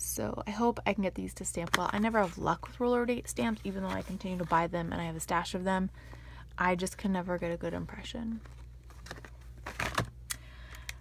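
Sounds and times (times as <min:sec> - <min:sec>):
plastic packs clicking and rustling: 0:08.4 - 0:11.0.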